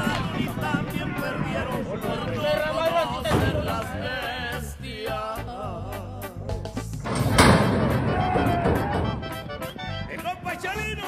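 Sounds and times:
horses galloping on dirt: 0.0 - 4.0
metal gate doors banging open: 7.0 - 9.8.

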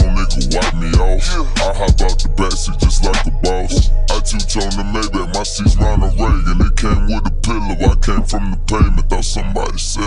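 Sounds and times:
deep heavy bass: 0.0 - 10.0
rapping over a beat: 0.0 - 10.0.

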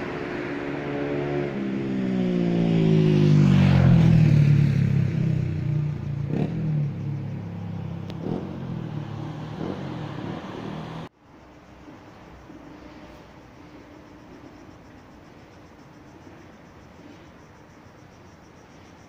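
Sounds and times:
vehicle driving past: 0.0 - 11.1.

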